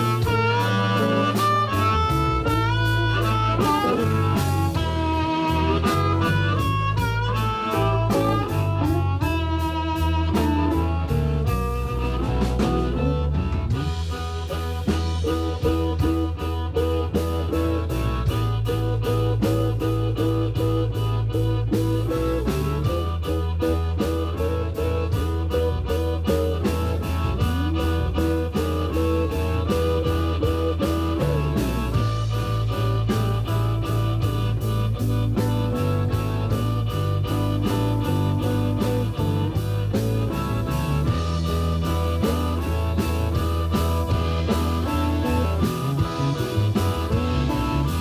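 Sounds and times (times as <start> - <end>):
bass guitar: 0.0 - 48.0
drum kit steady beat: 0.0 - 48.0
electric guitar: 0.0 - 48.0
harmonica: 0.0 - 48.0.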